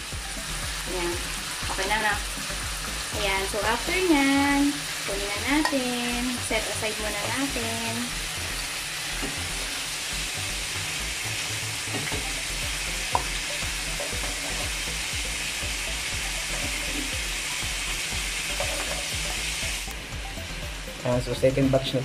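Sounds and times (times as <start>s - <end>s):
meat sizzling in a pan: 0.0s - 21.1s.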